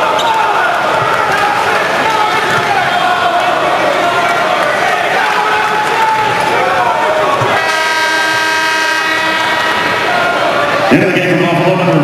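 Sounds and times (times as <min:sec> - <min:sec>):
arena horn blast: 0:07.5 - 0:12.0.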